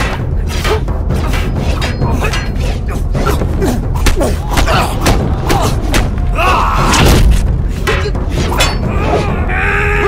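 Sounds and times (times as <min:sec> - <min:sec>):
sharp hits and swishes: 0:00.0 - 0:08.9
film music score: 0:00.0 - 0:10.0
people shouting: 0:02.0 - 0:07.4, 0:08.0 - 0:10.0.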